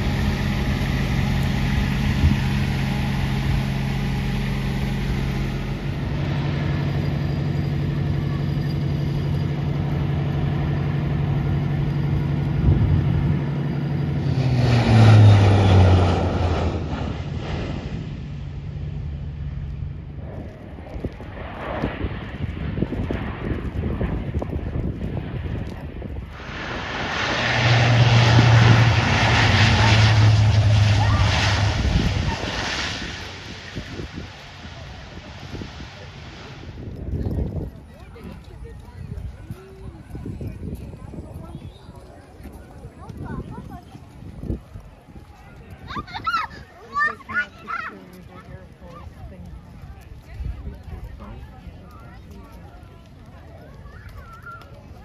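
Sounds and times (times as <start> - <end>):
low propeller drone: 0.0 - 55.0
turboprop aircraft passing: 0.0 - 55.0.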